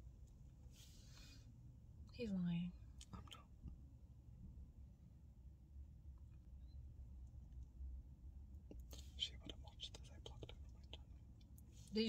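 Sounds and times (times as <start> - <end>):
low steady hum: 0.0 - 12.0
person whispering: 8.7 - 11.1, 11.8 - 12.0.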